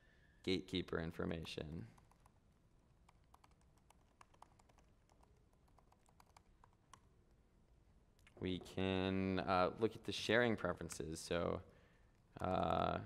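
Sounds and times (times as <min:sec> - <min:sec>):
typing on computer keyboard: 0:01.9 - 0:02.4, 0:03.0 - 0:07.1.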